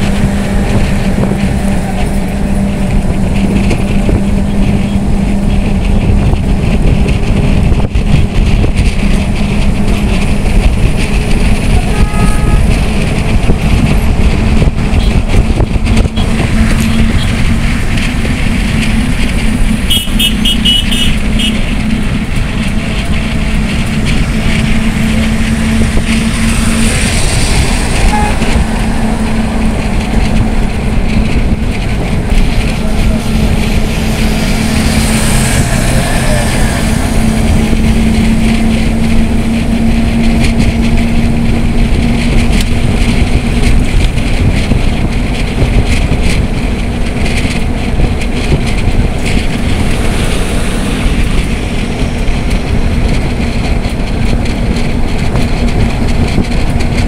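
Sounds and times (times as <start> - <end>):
engine hum: 0.0 - 57.0
road rumble: 0.0 - 57.0
wind rushing over microphone: 0.0 - 57.0
pulsed high tone: 27.9 - 28.7.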